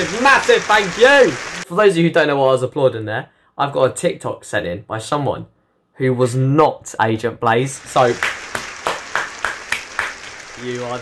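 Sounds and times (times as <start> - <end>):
hands clapping: 7.8 - 11.0.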